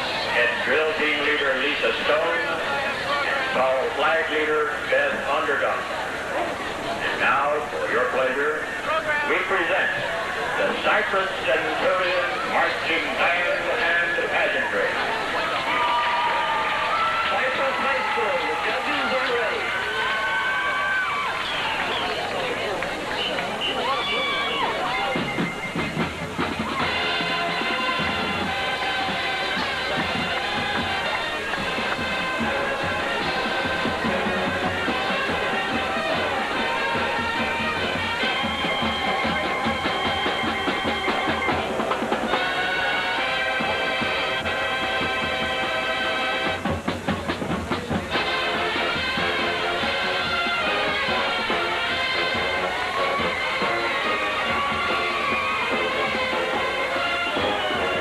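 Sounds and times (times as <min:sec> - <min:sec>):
wind and brass chords: 0:07.0 - 0:20.1, 0:22.6 - 0:58.0
marching drums: 0:21.7 - 0:58.0.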